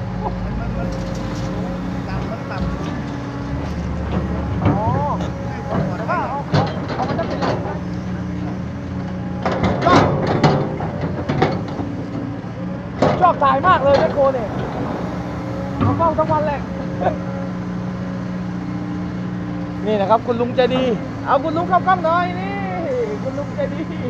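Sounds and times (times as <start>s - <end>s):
excavator diesel engine running: 0.0s - 24.0s.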